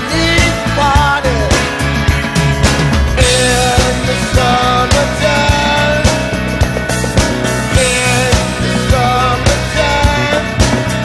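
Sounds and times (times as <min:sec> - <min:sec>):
rock music: 0:00.0 - 0:11.0.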